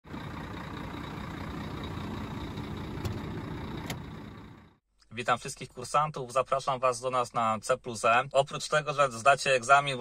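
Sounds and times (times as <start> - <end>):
diesel truck engine running: 0.0 - 4.8.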